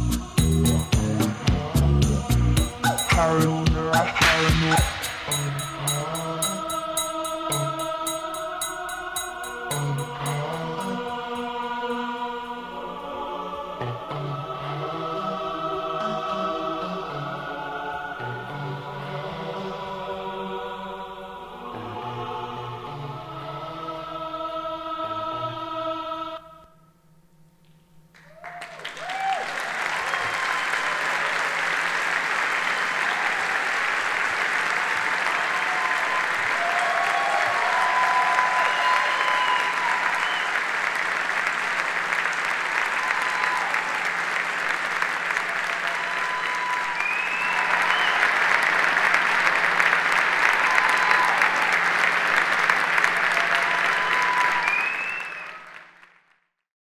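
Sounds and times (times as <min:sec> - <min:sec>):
cheers and whoops: 0:28.2 - 0:31.8, 0:32.8 - 0:33.9, 0:35.0 - 0:40.7, 0:42.7 - 0:44.3, 0:45.3 - 0:49.3, 0:50.3 - 0:52.1, 0:53.1 - 0:55.8
audience applauding: 0:28.2 - 0:56.4.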